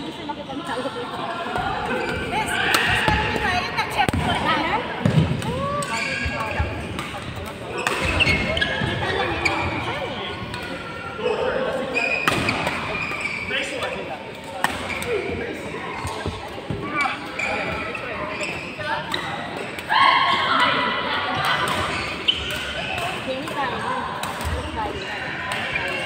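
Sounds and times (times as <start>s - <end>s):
shoes squeaking on court: 5.8s - 10.0s, 11.9s - 14.0s, 21.9s - 23.6s
rackets hitting shuttlecock: 21.5s - 24.6s.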